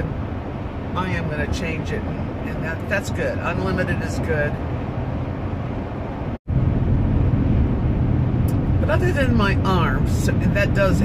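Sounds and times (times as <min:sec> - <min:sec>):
road and engine noise in car cabin: 0:00.0 - 0:11.0.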